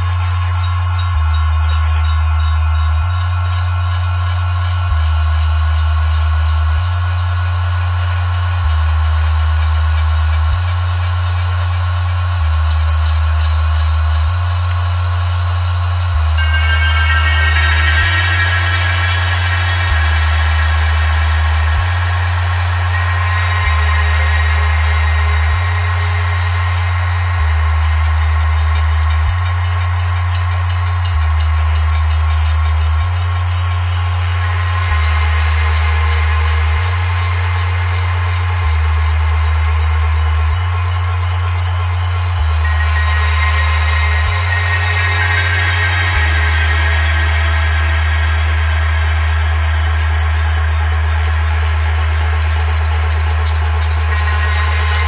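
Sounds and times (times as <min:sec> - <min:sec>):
deep bass notes: 0:00.0 - 0:55.0
fast ticking percussion hits: 0:00.0 - 0:55.0
ringing metallic tones: 0:16.2 - 0:55.0.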